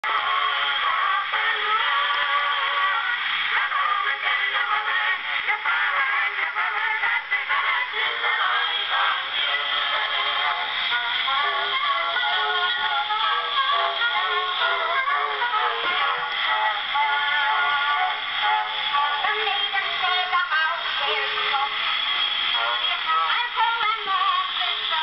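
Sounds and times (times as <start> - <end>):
phonograph song with thin tone: 0.0 - 25.0.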